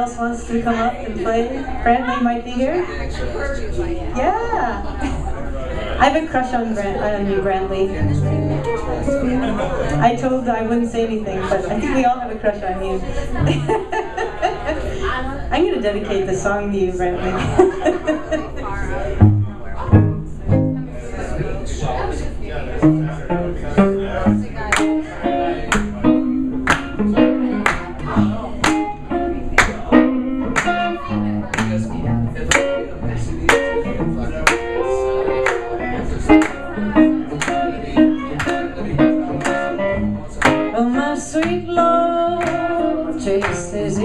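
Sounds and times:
live band playing: 0:07.3 - 0:10.8, 0:22.8 - 0:44.0.

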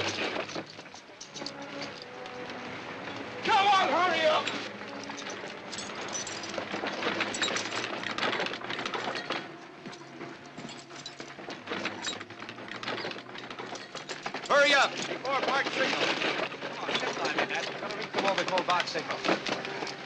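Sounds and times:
clattering of gear: 0:00.0 - 0:20.0
man shouting: 0:03.4 - 0:04.5
men's voices: 0:03.4 - 0:04.7, 0:14.5 - 0:19.3.

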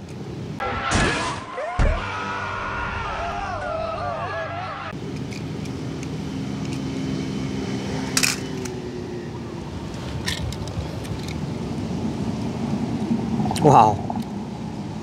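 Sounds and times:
metal toy cars clinking: 0:08.2 - 0:08.8.

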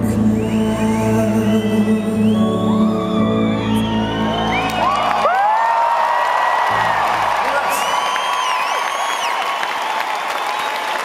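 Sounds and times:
crowd cheering and whistling: 0:00.0 - 0:11.0
piano: 0:00.0 - 0:11.0.

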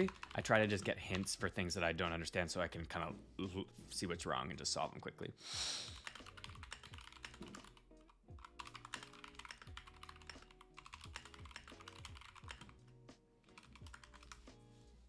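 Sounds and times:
typing on computer keyboard: 0:00.0 - 0:01.3, 0:06.0 - 0:14.4
quiet background music: 0:00.0 - 0:15.0.

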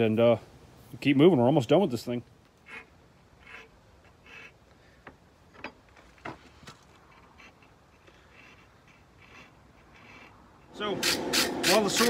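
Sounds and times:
file rasping on metal: 0:02.6 - 0:04.6, 0:07.1 - 0:12.0.

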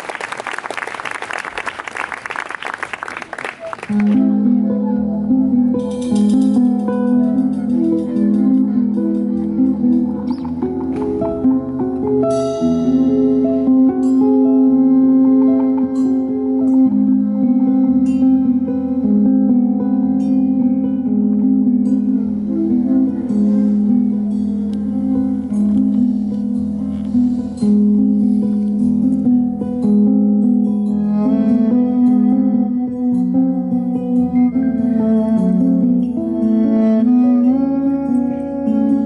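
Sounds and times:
acoustic guitar: 0:03.9 - 0:39.0
cello long notes: 0:03.9 - 0:39.0.

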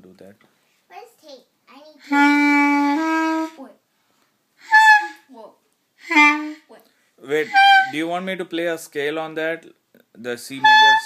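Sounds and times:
clarinet notes: 0:02.0 - 0:03.6, 0:04.6 - 0:05.3, 0:06.0 - 0:06.7, 0:07.3 - 0:08.1, 0:10.5 - 0:11.0.

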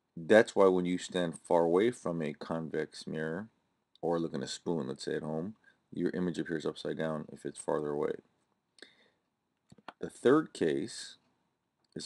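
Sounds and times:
person speaking: 0:00.1 - 0:08.5, 0:09.7 - 0:11.3.

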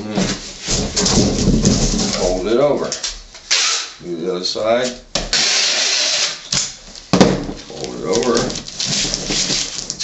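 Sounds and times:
packing tape ripping: 0:03.5 - 0:04.0, 0:05.3 - 0:10.0.

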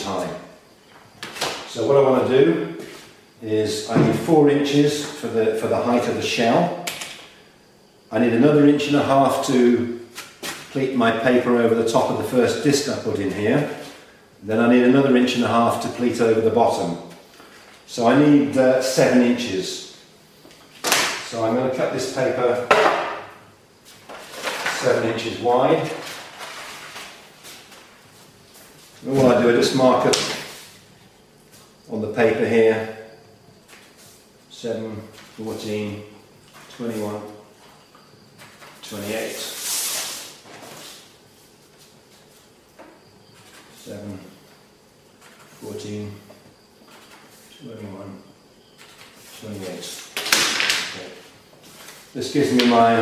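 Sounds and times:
paper rustling: 0:25.8 - 0:27.9
metal rule scraping paper: 0:38.9 - 0:41.0.

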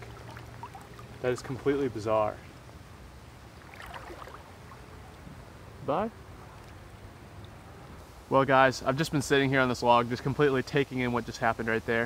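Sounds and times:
river flowing over gravel: 0:00.0 - 0:02.3, 0:03.5 - 0:04.9.

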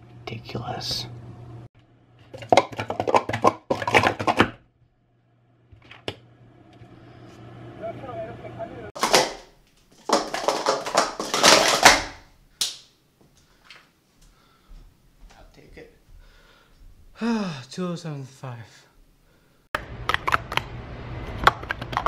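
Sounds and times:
plastic cups clattering when stacked: 0:02.3 - 0:04.6, 0:09.0 - 0:12.2.

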